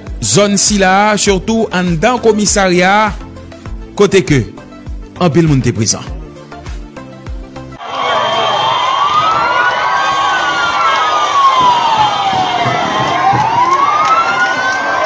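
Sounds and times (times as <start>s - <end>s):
music: 0.0s - 8.4s
person's voice: 5.2s - 6.3s
crowd noise: 7.8s - 15.0s
vehicle siren wailing: 7.8s - 15.0s.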